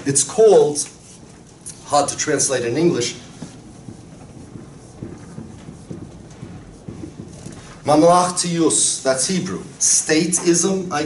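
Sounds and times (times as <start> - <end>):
marker writing on a whiteboard: 0.0 - 11.0.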